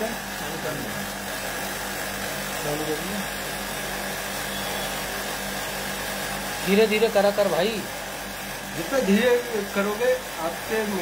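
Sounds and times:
air conditioner humming: 0:00.0 - 0:11.0.

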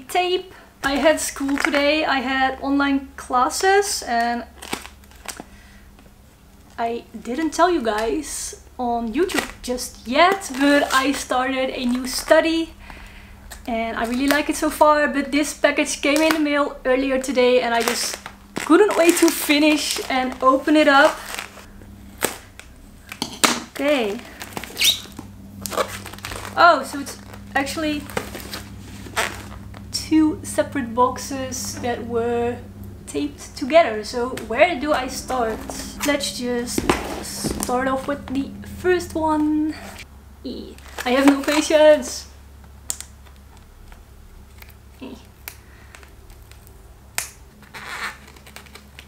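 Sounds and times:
scissors snipping packing tape: 0:45.4 - 0:49.0.

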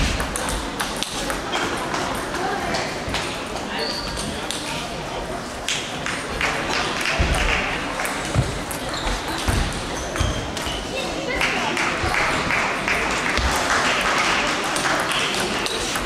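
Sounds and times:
crowd chatter: 0:00.0 - 0:16.0
table tennis balls clicking: 0:00.2 - 0:02.5.

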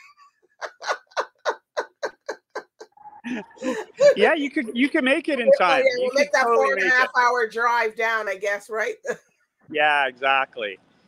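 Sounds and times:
person laughing: 0:00.0 - 0:07.1.

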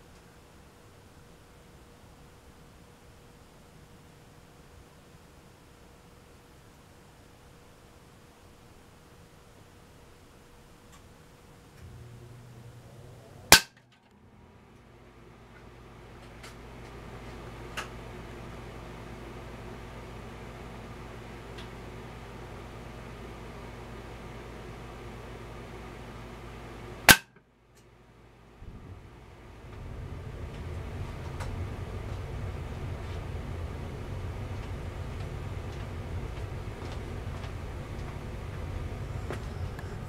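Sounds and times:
low background noise: 0:00.0 - 0:40.0
pellet striking plywood target: 0:13.5 - 0:13.8, 0:27.1 - 0:27.3
air rifle shot: 0:13.5 - 0:13.9.

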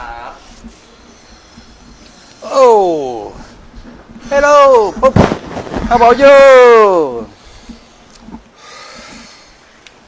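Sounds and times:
man exclaiming loudly: 0:02.4 - 0:03.4, 0:05.9 - 0:07.3
sharp thump: 0:05.0 - 0:06.0.

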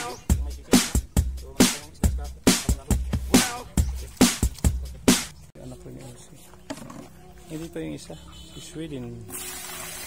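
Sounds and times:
people talking: 0:00.0 - 0:04.5, 0:05.6 - 0:09.3.

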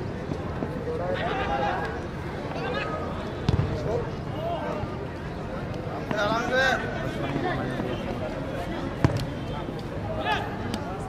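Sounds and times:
chatter of spectators: 0:00.0 - 0:11.0
football kick thump: 0:03.5 - 0:03.9.

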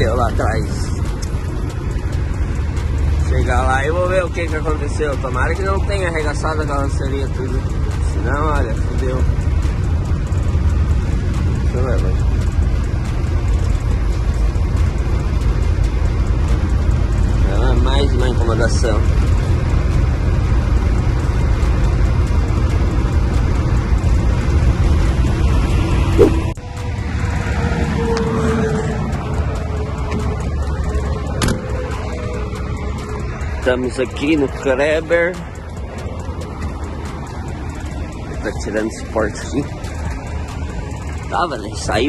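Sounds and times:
background music: 0:00.0 - 0:42.0
road noise: 0:00.0 - 0:42.0
truck engine drone: 0:00.0 - 0:42.0.

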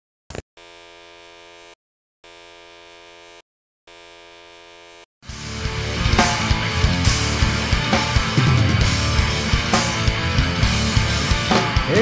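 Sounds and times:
electric buzzes: 0:00.3 - 0:05.1
rock music: 0:05.2 - 0:12.0.

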